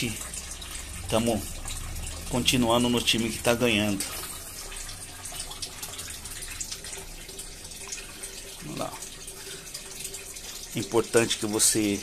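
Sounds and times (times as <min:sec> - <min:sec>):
water stream splashing into tank: 0:00.0 - 0:12.0.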